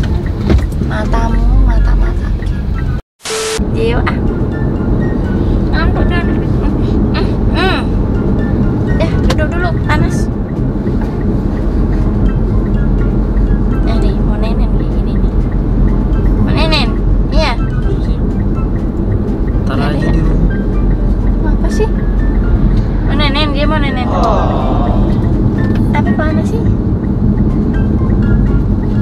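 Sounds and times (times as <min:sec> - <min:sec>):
car road and engine rumble: 0:00.0 - 0:29.0
background music: 0:03.6 - 0:29.0
person speaking: 0:23.8 - 0:26.0.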